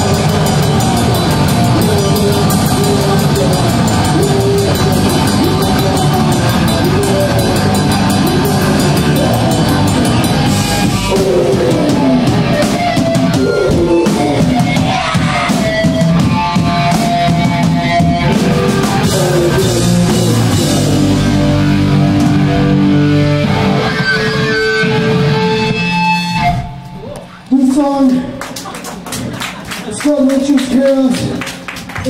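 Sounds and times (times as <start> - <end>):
punk band playing loud: 0.0 - 27.0.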